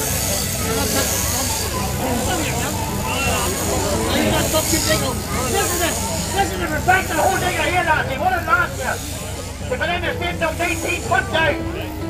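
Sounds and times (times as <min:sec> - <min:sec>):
crowd voices in background: 0:00.0 - 0:12.0
people talking: 0:00.0 - 0:12.0.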